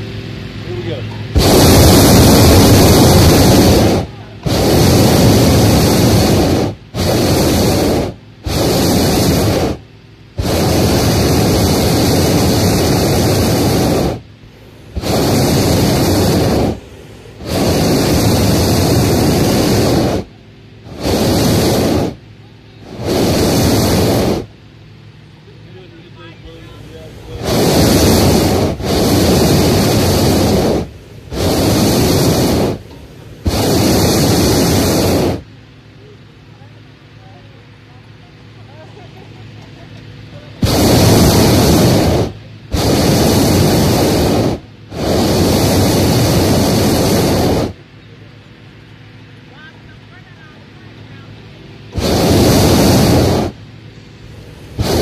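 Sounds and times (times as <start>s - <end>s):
propane burner blasts: 0.0s - 55.0s.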